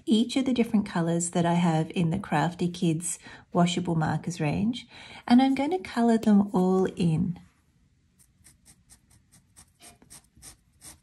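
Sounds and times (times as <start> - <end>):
marker scribbling on fabric: 8.2 - 11.0.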